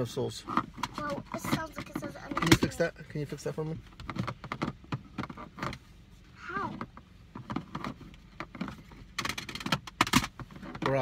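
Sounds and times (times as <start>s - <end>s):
cd cases clicking and knocking: 7.4s - 11.0s.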